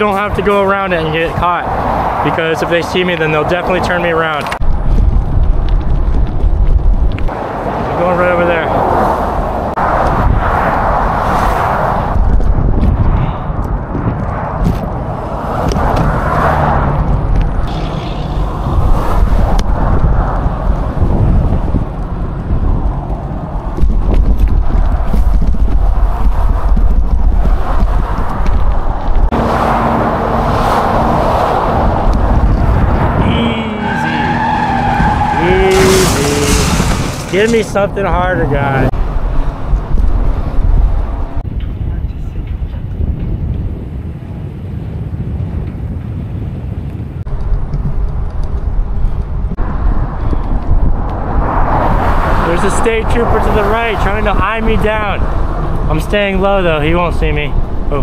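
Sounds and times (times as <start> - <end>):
traffic passing: 0.0 - 58.0
wind rumbling on microphone: 0.0 - 58.0.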